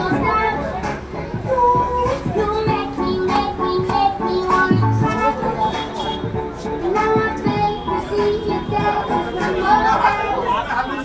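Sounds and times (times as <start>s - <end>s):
voices chattering: 4.6s - 11.0s.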